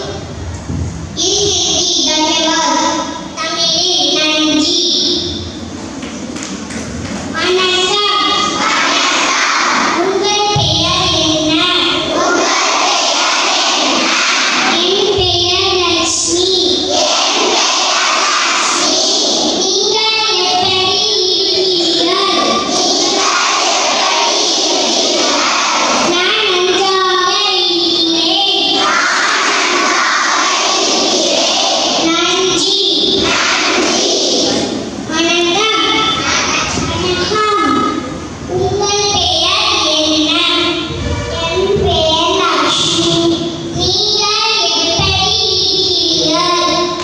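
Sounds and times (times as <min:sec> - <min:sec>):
children singing into a microphone: 0:07.4 - 0:38.0.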